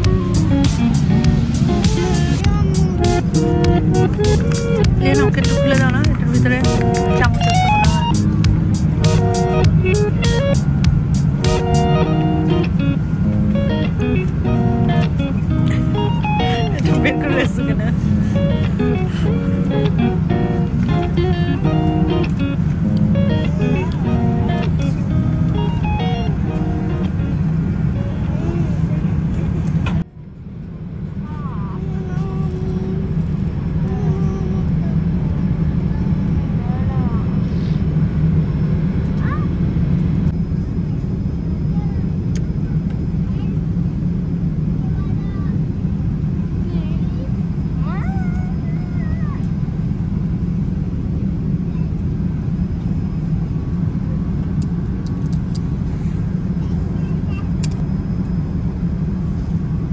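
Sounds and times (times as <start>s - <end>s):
jet airliner cabin noise: 0.0s - 59.9s
faint voices: 23.2s - 43.7s.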